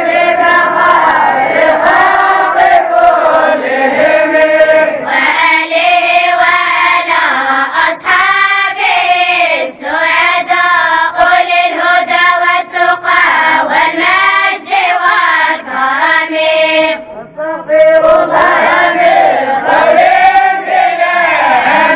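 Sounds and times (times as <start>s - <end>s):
girls chanting in unison: 0.0s - 21.9s.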